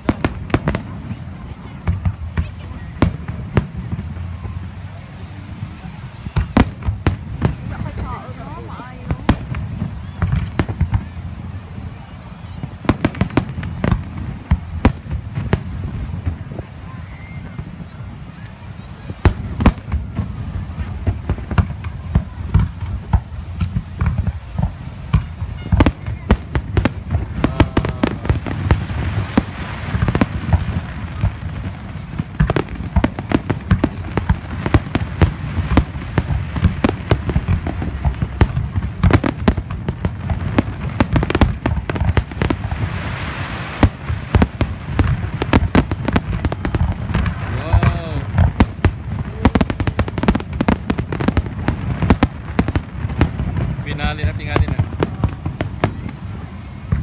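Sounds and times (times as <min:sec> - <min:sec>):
fireworks bangs and crackles: 0:00.0 - 0:57.0.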